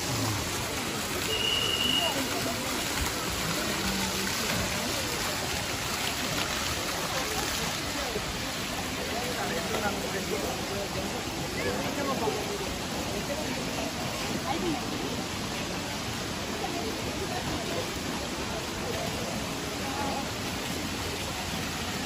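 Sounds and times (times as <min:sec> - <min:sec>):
fountain jets splashing into pool: 0:00.0 - 0:22.0
people chattering: 0:00.0 - 0:22.0.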